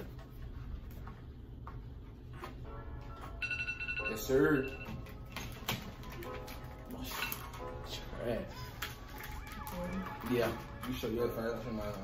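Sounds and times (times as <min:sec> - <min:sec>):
phone timer alarm tones: 0:03.4 - 0:05.1.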